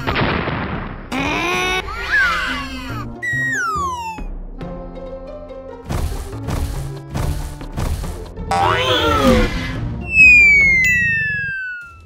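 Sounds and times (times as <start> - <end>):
background music: 1.1 - 12.0
loud falling whistle: 10.1 - 12.0
rising and falling call: 10.1 - 12.0.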